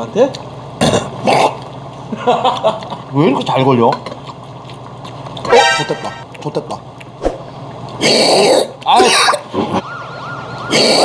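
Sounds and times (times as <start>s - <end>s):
wailing siren sound effect: 5.5s - 6.2s, 9.7s - 11.0s.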